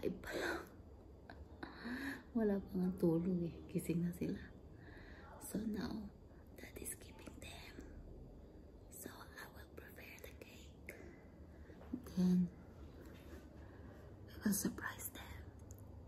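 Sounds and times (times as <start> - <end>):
woman whispering: 5.2 - 8.1, 8.8 - 11.0, 11.8 - 12.7, 14.3 - 15.8.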